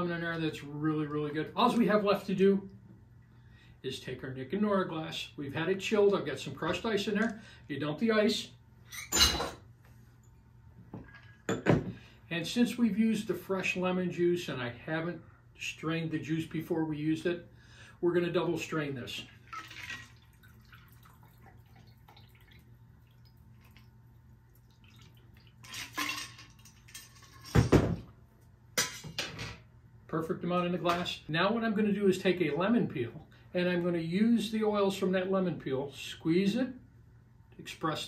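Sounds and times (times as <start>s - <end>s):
liquid trickling: 19.2s - 27.2s
crushed ice rattling from glass: 25.6s - 27.6s
metal and glass clatter: 25.6s - 28.0s.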